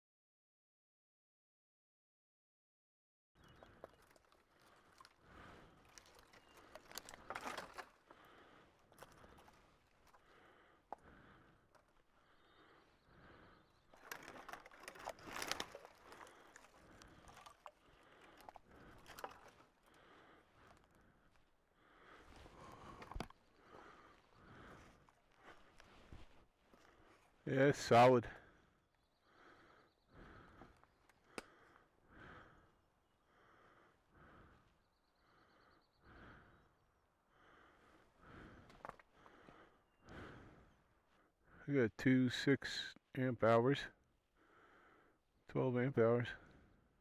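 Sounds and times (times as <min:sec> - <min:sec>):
dry branches crackling and rustling: 0:03.4 - 0:27.4
footsteps in deadfall: 0:03.5 - 0:12.7, 0:13.8 - 0:27.4
branches snapping: 0:03.6 - 0:12.0, 0:13.8 - 0:21.5.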